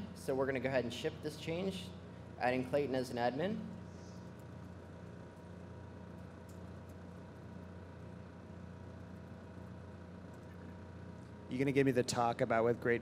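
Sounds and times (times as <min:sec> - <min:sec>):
sound system hum: 0:00.0 - 0:13.0.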